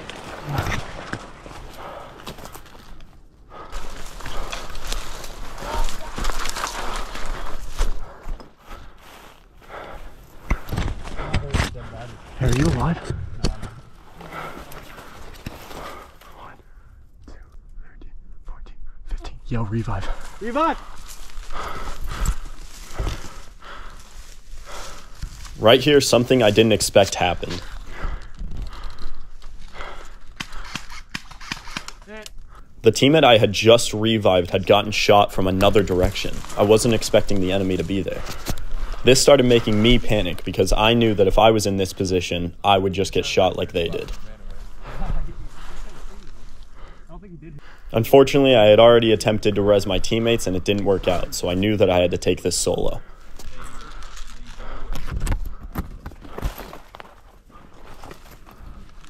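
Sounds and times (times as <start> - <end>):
twigs snapping: 0.0 - 8.5, 27.6 - 32.4
body pushing through twiggy brush: 0.0 - 13.0, 20.2 - 26.8
dry leaves crunching: 3.7 - 7.9.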